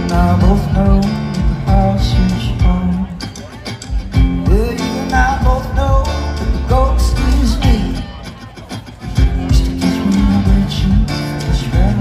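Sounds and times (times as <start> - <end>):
drums: 0.0 - 12.0
electric guitars: 0.0 - 12.0
keyboards: 0.0 - 12.0.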